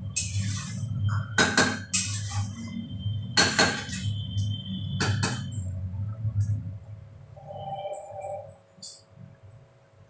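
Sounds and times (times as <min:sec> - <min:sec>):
spatula scraping a pan: 0:00.2 - 0:00.9.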